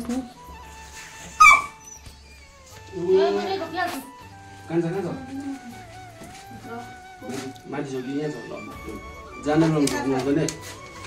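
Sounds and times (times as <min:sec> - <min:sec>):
background music with low beat: 0:00.0 - 0:11.0.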